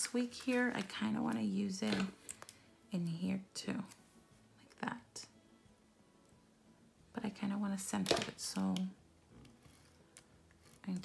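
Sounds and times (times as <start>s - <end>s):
correction tape rasping on paper: 9.6s - 11.0s.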